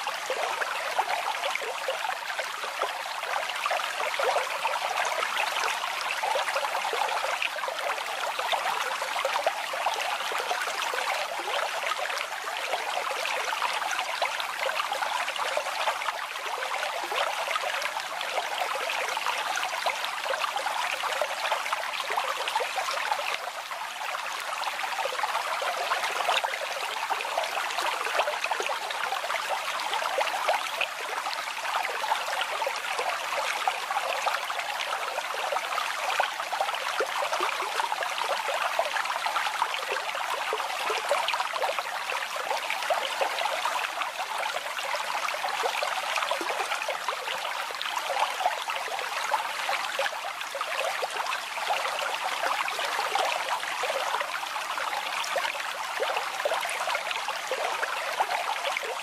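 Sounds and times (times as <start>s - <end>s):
brook water babbling: 0.0s - 59.0s.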